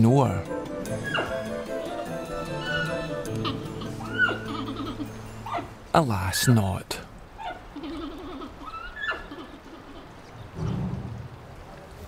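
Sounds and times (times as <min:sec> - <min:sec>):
panda bleating: 0:02.3 - 0:05.7.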